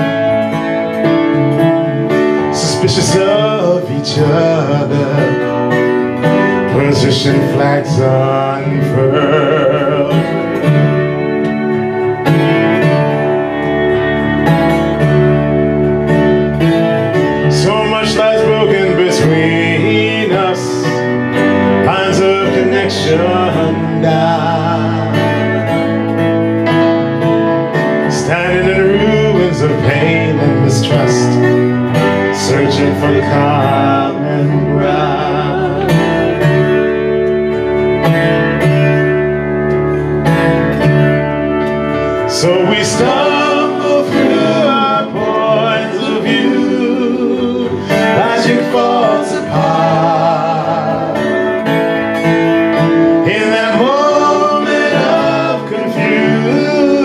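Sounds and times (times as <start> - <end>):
keyboard with steady bass: 0.0 - 57.0
strummed acoustic guitar: 0.0 - 57.0.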